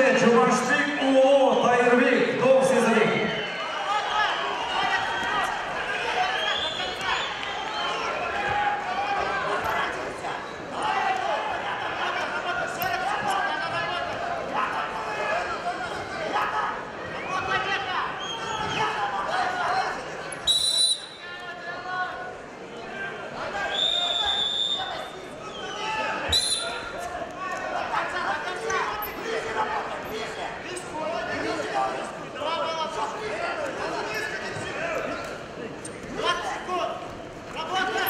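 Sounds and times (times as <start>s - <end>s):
voices shouting in echoing hall: 0.0s - 38.0s.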